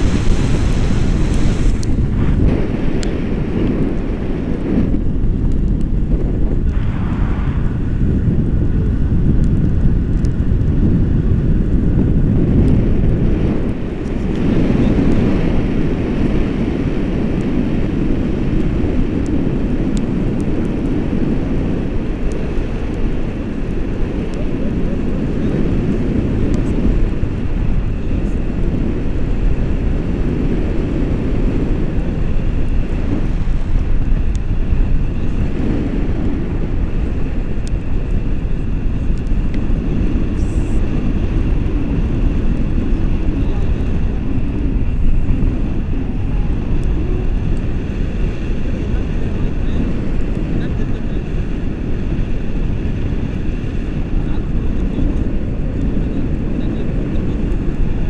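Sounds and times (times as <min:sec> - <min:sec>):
wind rumble on microphone: 0:00.0 - 0:58.0.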